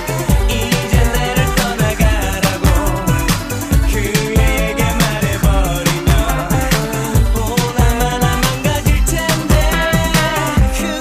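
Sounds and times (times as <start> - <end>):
drum beat and bass line: 0.0 - 11.0
person singing dance-pop song: 0.0 - 11.0.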